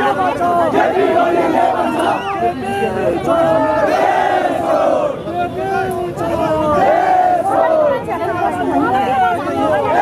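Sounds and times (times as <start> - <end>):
crowd of protesters shouting: 0.0 - 10.0.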